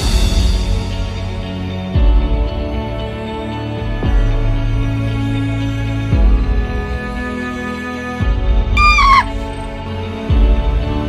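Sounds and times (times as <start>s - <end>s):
dramatic film score music: 0.0s - 11.0s
high falling cry: 8.8s - 9.4s.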